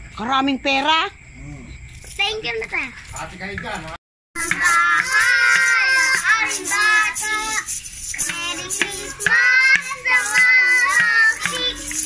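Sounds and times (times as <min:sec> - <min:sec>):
homemade percussion rattling: 0:03.1 - 0:12.0
children singing a carol: 0:04.4 - 0:12.0.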